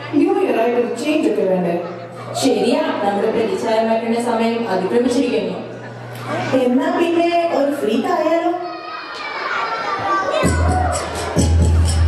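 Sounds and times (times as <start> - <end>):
children shouting: 8.3 - 12.0
audience cheering: 8.6 - 12.0
bass-heavy dance track: 10.4 - 12.0.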